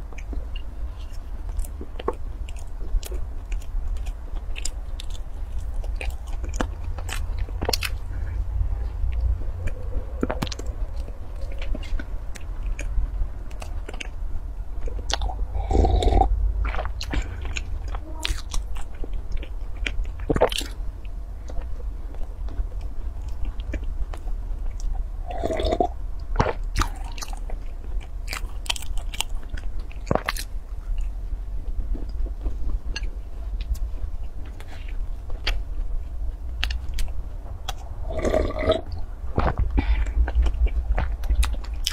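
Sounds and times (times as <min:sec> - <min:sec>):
person chewing pastry: 0:00.0 - 0:41.9
steady low hum: 0:00.0 - 0:41.9.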